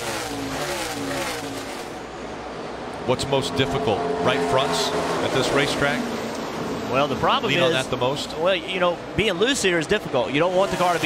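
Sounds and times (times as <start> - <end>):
race car engines passing: 0.0 - 11.0.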